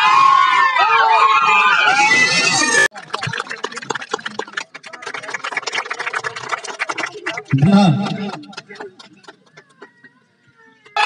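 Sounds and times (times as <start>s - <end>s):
small crowd clapping: 2.9s - 11.0s.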